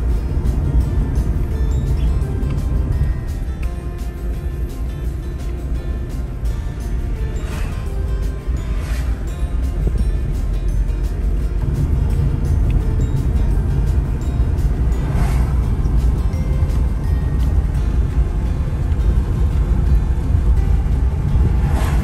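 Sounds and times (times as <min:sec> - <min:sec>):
car road rumble from inside: 0:00.0 - 0:22.0
music playing: 0:00.0 - 0:22.0
brief whoosh: 0:07.3 - 0:09.3, 0:15.0 - 0:15.6, 0:21.6 - 0:22.0.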